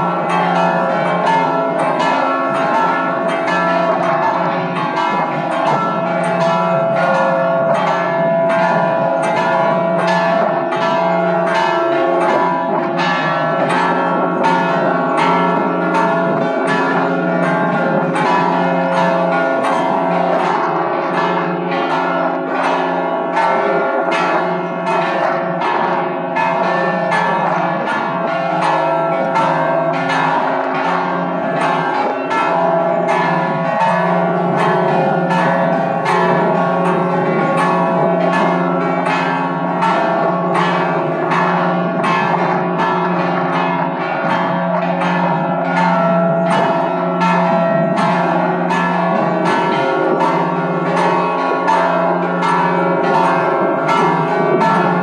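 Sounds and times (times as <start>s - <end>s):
church bells pealing: 0.0s - 55.0s
hum of bells: 0.0s - 55.0s.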